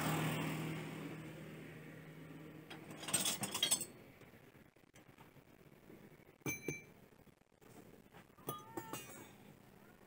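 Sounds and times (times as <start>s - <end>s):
passing vehicle engine hum: 0.0s - 2.9s.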